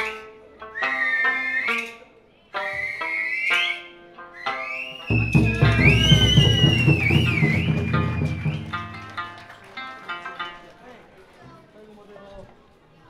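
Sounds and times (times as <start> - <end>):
plucked string notes: 3.9 - 10.6.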